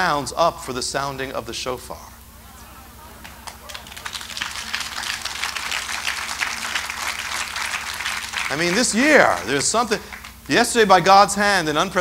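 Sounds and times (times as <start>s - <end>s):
crowd applauding: 2.4s - 10.5s.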